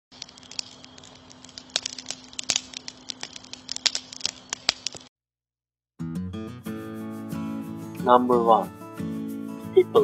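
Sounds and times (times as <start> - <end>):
crackling clicks and snaps: 0.0 - 5.1.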